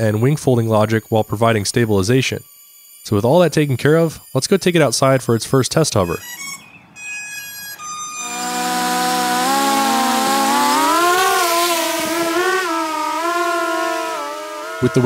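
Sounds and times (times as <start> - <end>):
drone motors whining: 6.1 - 15.0.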